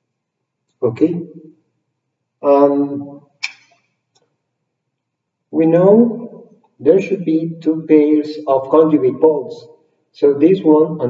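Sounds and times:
man saying um: 0:00.8 - 0:01.2, 0:02.4 - 0:03.0, 0:05.6 - 0:06.1, 0:06.8 - 0:09.6, 0:10.2 - 0:11.0.

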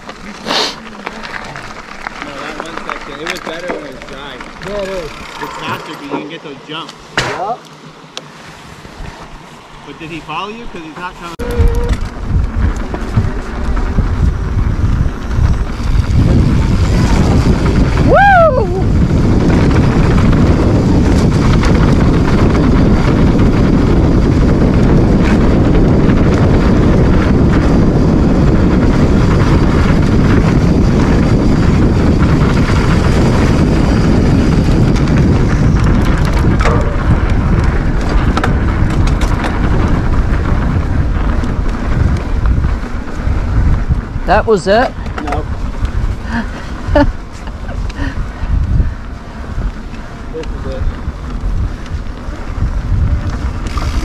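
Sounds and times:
tyres rolling on dirt: 0:00.0 - 0:18.2, 0:18.8 - 0:54.0
wind on microphone: 0:08.4 - 0:54.0.

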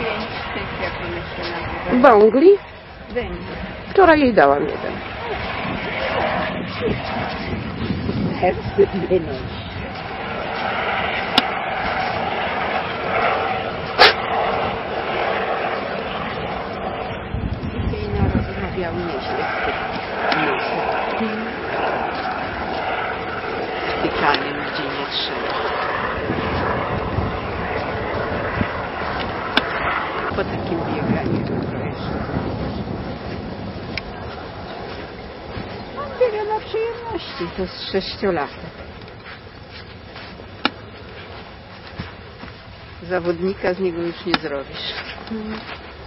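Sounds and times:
helicopter flying overhead: 0:00.0 - 0:46.0
outdoor background noise: 0:00.0 - 0:46.0.

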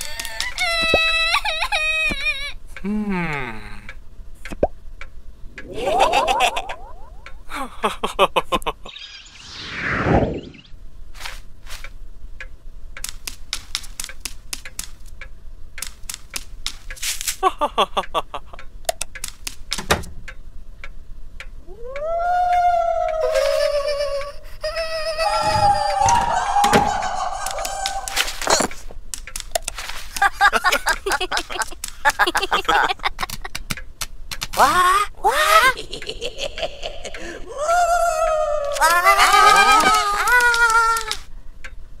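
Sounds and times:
cartoon light clicks: 0:04.4 - 0:04.8, 0:12.4 - 0:17.0, 0:18.8 - 0:20.4
faint clicks: 0:11.7 - 0:17.4, 0:18.0 - 0:24.3, 0:27.4 - 0:34.6, 0:39.7 - 0:41.8
high voice-like cartoon tones: 0:24.9 - 0:28.7, 0:34.6 - 0:35.8, 0:37.6 - 0:41.2.

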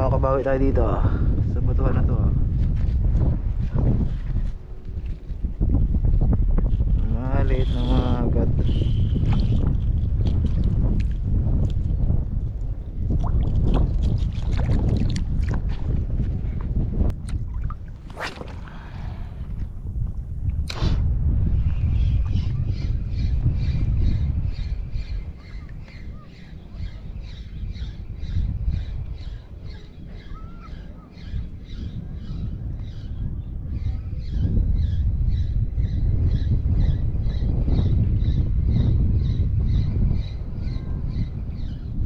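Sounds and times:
wind rumbling on microphone: 0:00.0 - 0:42.0.

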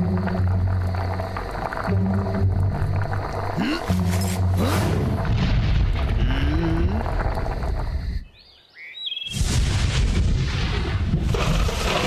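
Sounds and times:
rumbling cartoon sound effect: 0:00.0 - 0:07.9.

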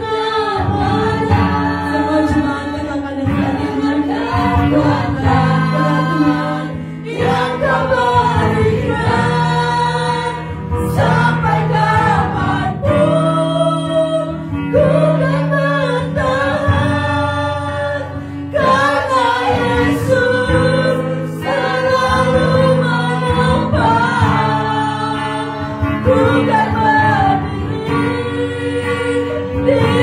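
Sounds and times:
acoustic guitar: 0:00.0 - 0:30.0
woman singing into microphone: 0:00.0 - 0:30.0.

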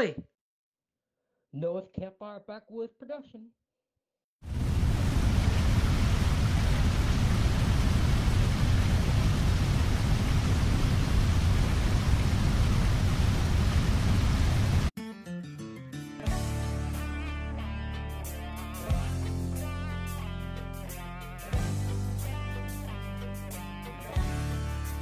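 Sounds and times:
guitar music: 0:15.0 - 0:25.0.

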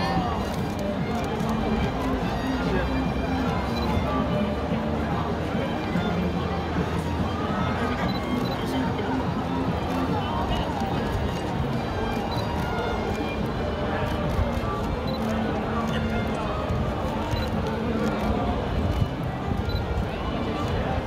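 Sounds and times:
background music: 0:00.0 - 0:21.0
crowd chatter: 0:00.0 - 0:21.0.

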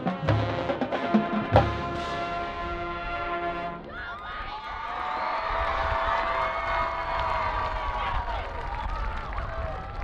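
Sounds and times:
crowd cheering and whooping: 0:03.9 - 0:10.0
wind rumble on microphone: 0:05.3 - 0:10.0.

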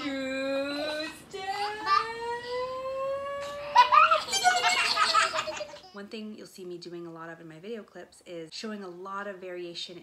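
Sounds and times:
drawn-out wordless voice: 0:00.0 - 0:03.9
laughter: 0:03.8 - 0:06.0.

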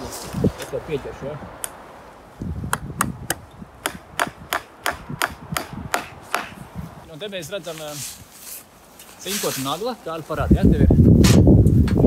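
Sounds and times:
hammer striking nail into wood: 0:02.7 - 0:06.6.

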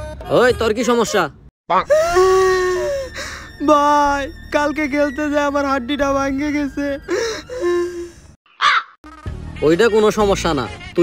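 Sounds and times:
crow caw: 0:08.5 - 0:09.0.

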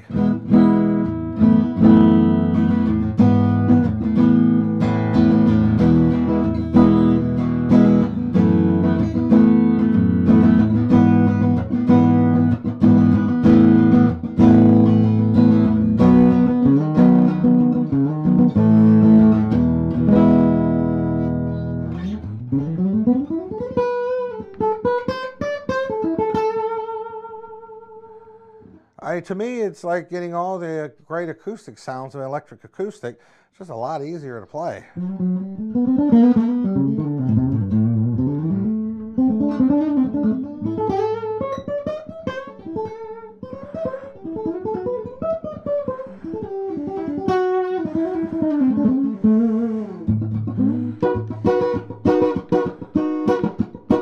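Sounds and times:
acoustic-toned guitar strumming: 0:00.0 - 0:28.7, 0:35.0 - 0:54.0
guitar single notes with vibrato: 0:34.9 - 0:54.0.

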